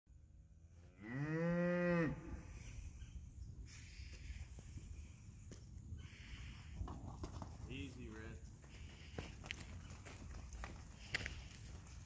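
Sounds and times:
cow mooing: 0:00.8 - 0:02.5.

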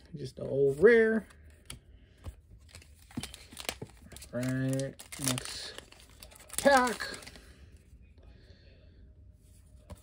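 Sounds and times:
trading cards rustling and clicking: 0:01.4 - 0:07.4
foil wrappers crinkling: 0:02.6 - 0:07.6.

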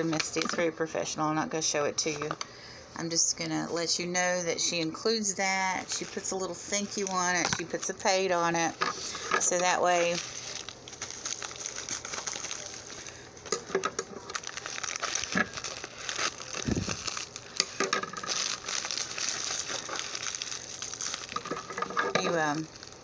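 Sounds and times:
plastic packaging crinkling: 0:04.6 - 0:23.0.

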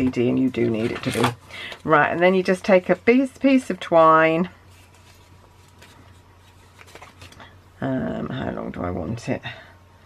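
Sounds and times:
twine rustling: 0:00.0 - 0:07.7
low steady hum: 0:00.0 - 0:10.0.

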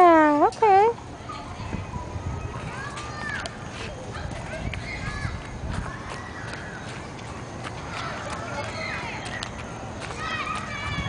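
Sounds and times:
wind rumble on microphone: 0:00.8 - 0:07.4
footsteps crunching on wood chips: 0:02.9 - 0:10.9.

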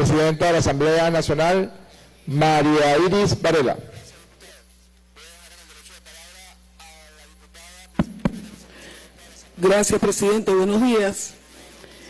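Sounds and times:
microphone handling knocks: 0:08.0 - 0:08.6.

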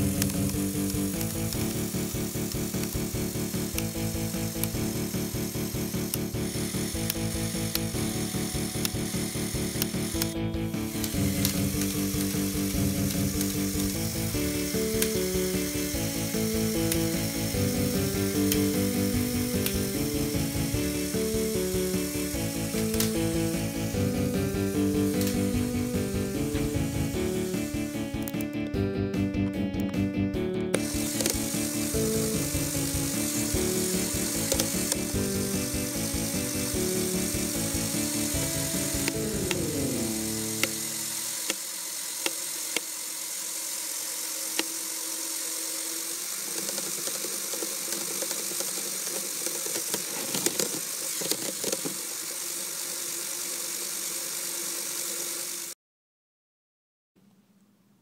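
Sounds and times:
toy motor running: 0:00.0 - 0:28.5, 0:30.7 - 0:55.8
gears clicking: 0:00.0 - 0:28.8, 0:30.6 - 0:55.8
background music with a beat: 0:10.1 - 0:40.8.

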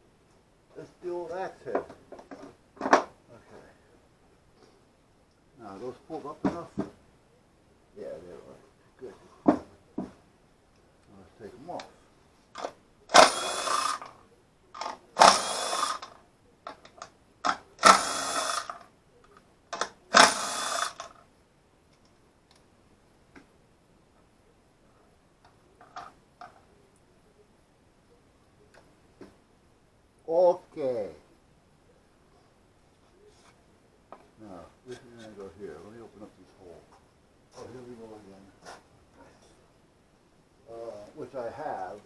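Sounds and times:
power drill driving screws: 0:12.6 - 0:14.1, 0:14.8 - 0:16.2, 0:17.5 - 0:18.8, 0:19.8 - 0:21.2.

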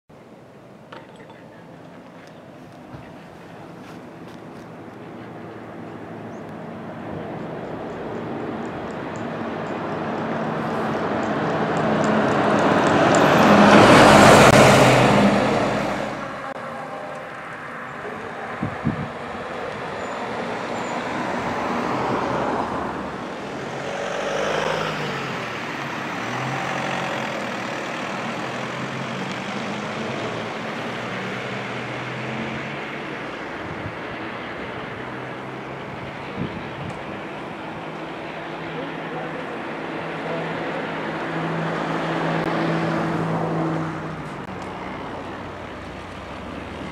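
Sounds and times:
fainter vehicles passing: 0:00.2 - 0:46.9
vehicle passing close by: 0:05.2 - 0:46.9.

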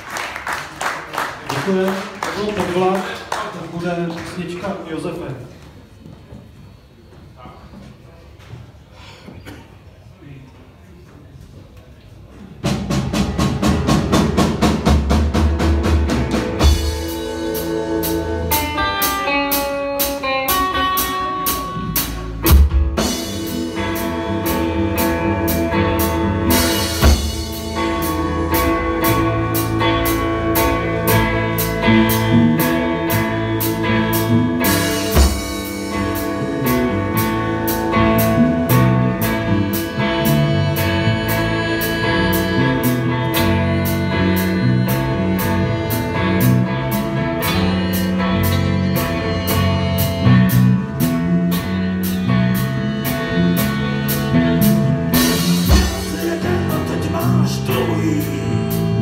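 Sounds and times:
faint stage noise: 0:00.0 - 0:59.0
live rock band playing: 0:12.5 - 0:59.0.

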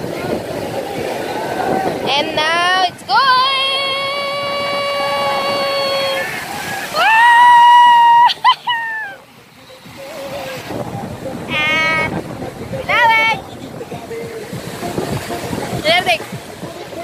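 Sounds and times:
sea surf washing on sand: 0:00.0 - 0:17.0.

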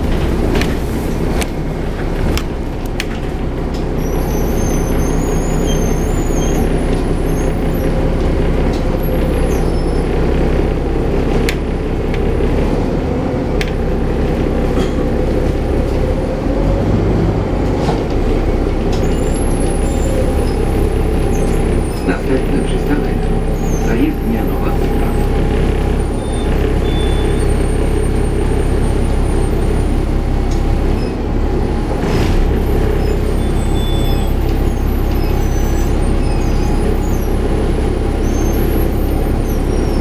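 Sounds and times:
bus engine droning: 0:00.0 - 0:40.0.

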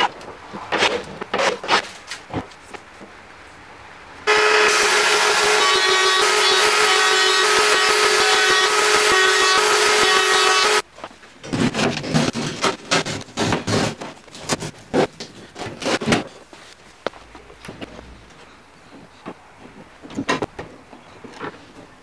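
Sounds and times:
electric power tool running: 0:04.3 - 0:10.8
scraping on wood: 0:11.4 - 0:16.8.

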